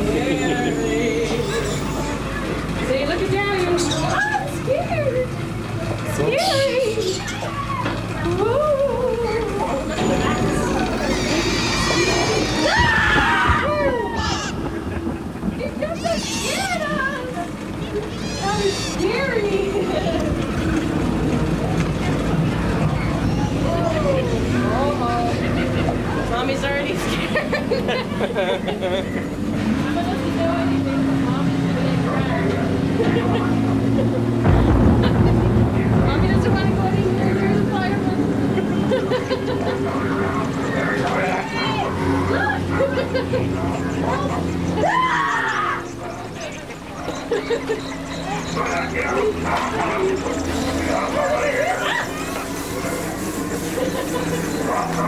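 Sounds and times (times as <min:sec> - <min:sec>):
steady low rumble: 0:00.0 - 0:45.1
voices: 0:00.0 - 0:55.0
steady low hum: 0:06.9 - 0:55.0.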